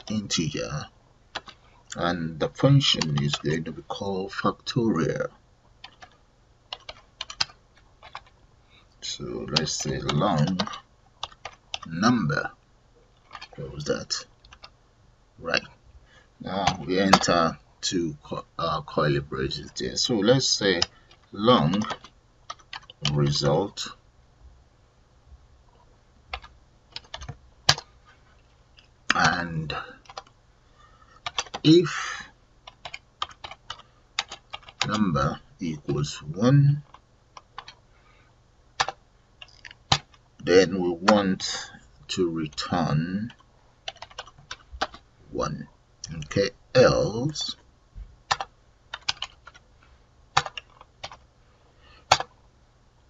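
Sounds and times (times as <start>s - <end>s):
computer keyboard typing: 1.3s - 1.7s, 2.8s - 3.6s, 5.8s - 8.4s, 9.4s - 12.1s, 13.2s - 14.8s, 16.6s - 17.5s, 20.8s - 23.4s, 26.3s - 27.9s, 30.0s - 30.3s, 31.2s - 31.7s, 32.6s - 35.1s, 36.8s - 37.8s, 38.8s - 40.2s, 42.5s - 45.0s, 48.3s - 49.6s, 50.3s - 51.2s, 52.1s - 52.4s.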